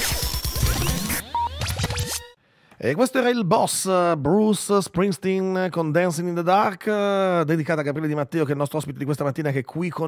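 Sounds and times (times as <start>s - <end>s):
electronic sweeps: 0.0s - 2.4s
scratch effects: 0.0s - 2.4s
man speaking: 2.8s - 10.0s.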